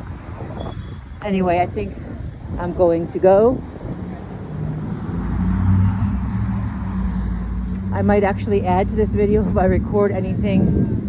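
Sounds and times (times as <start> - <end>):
motor vehicle engine rumble: 0.0 - 11.0.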